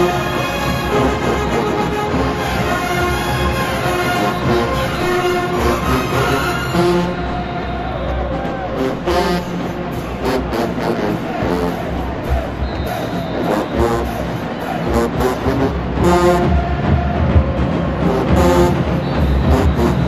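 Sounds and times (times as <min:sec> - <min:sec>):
brass chords: 0:00.0 - 0:20.0
drums keeping a beat: 0:00.0 - 0:20.0.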